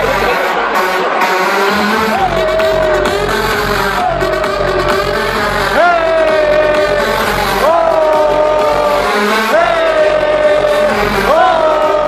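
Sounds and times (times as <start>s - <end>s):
heavy low bass: 0.0s - 12.0s.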